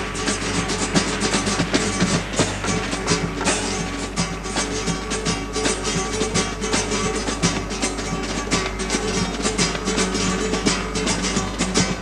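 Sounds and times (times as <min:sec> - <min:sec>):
quick drum beat: 0:00.0 - 0:12.0
strummed guitars: 0:00.0 - 0:12.0.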